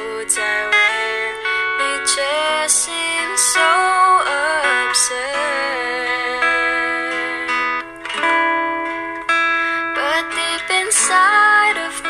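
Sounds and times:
guitar accompaniment: 0.0 - 12.0
person singing ballad: 0.0 - 12.0.

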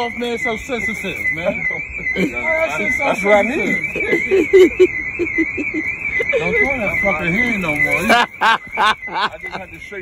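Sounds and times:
warbling alarm tone: 0.0 - 10.0
man laughing: 2.0 - 2.6, 3.9 - 6.8, 8.0 - 9.7.

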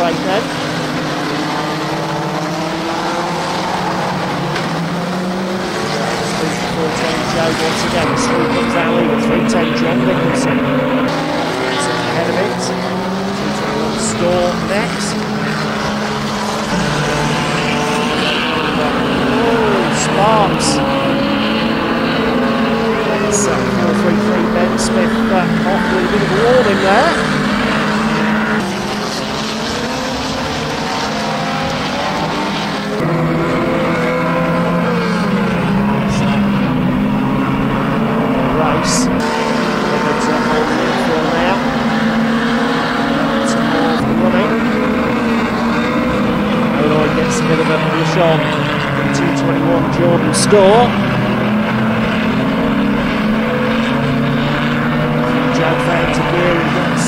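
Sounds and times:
stock car engines revving: 0.0 - 57.0.

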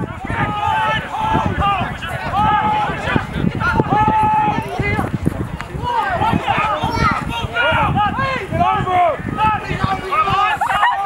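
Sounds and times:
long drawn-out shout: 0.0 - 5.0, 5.8 - 11.0
voices shouting and calling out: 0.0 - 11.0.

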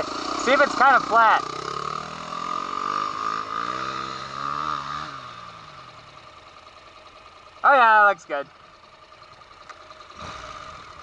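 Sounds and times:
motorcycle accelerating away: 0.0 - 6.2, 9.6 - 11.0.

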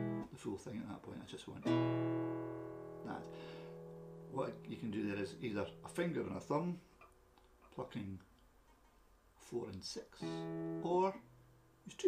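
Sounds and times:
acoustic guitar chord ringing: 0.0 - 0.3, 1.6 - 6.4, 10.2 - 11.4.

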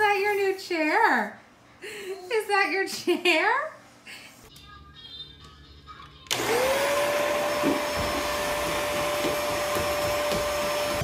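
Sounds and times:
vacuum cleaner running: 6.3 - 11.0.

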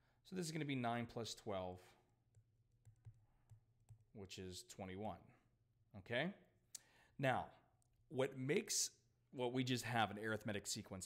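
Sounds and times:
stylus tapping on tablet screen: 2.3 - 4.2.

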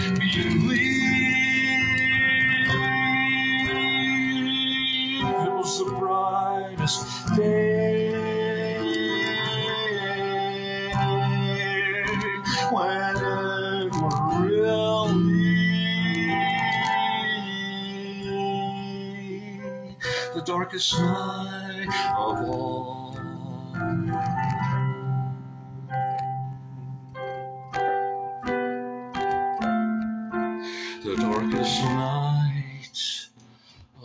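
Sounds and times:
man singing long notes: 0.0 - 26.4, 30.7 - 33.4
sustained instrumental accompaniment: 0.0 - 32.8.

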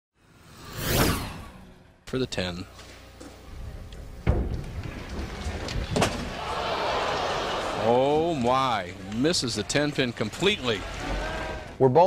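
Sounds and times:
whoosh sound effect: 0.5 - 1.8.

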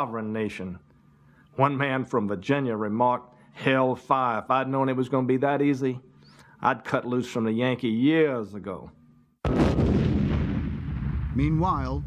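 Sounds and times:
cannon blast: 9.4 - 12.0
low rumble: 9.5 - 12.0.

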